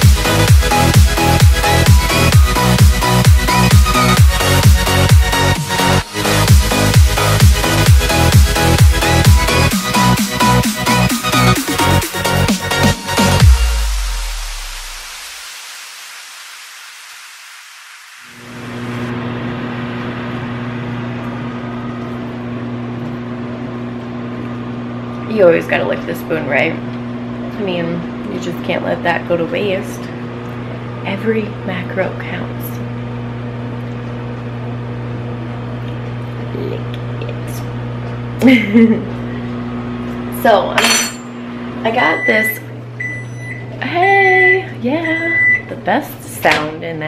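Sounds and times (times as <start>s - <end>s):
microwave oven humming: 0.0s - 14.6s, 18.4s - 47.0s
background music: 0.0s - 15.0s.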